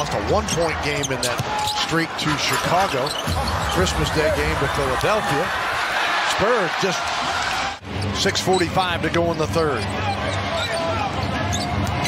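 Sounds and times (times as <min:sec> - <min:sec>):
murmur of arena crowd: 0:00.0 - 0:12.0.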